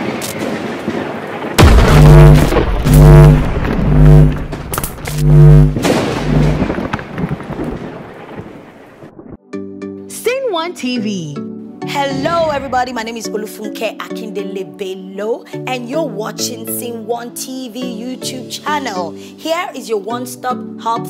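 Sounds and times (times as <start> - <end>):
deep booming hits: 1.6 - 7.6
rumbling thunder-like music bed: 1.6 - 8.4.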